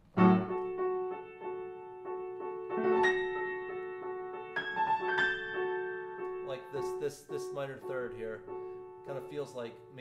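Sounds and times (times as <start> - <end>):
grand piano played softly: 0.0 - 10.0.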